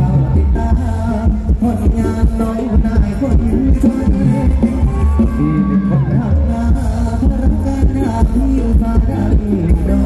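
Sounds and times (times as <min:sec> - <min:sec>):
heavy bass drum beat: 0:00.0 - 0:10.0
live dance music from a band: 0:00.0 - 0:10.0.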